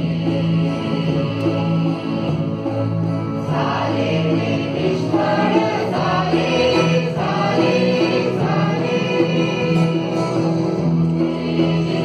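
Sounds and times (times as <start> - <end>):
acoustic guitar: 0.0 - 12.0
mixed choir singing: 0.0 - 12.0.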